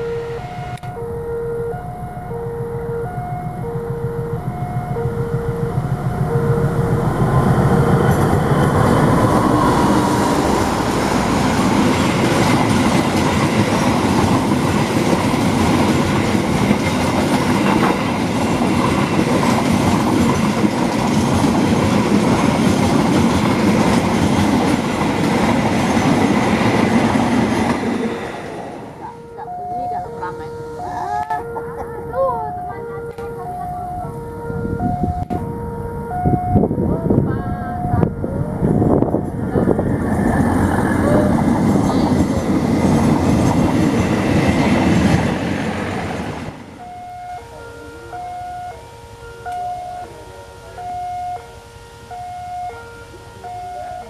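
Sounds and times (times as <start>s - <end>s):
two-tone level crossing alarm: 0.0s - 40.0s, 46.6s - 54.0s
train rumbling past: 0.0s - 54.0s.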